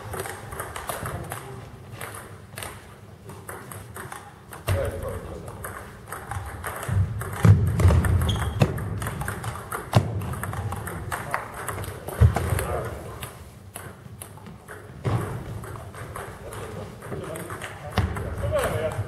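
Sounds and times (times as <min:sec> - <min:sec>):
table tennis balls clicking: 0:00.0 - 0:19.0.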